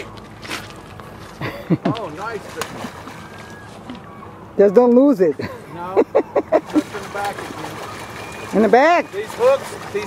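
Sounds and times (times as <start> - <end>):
man laughing: 1.4 - 2.1, 5.4 - 7.1
river water flowing: 2.0 - 10.0.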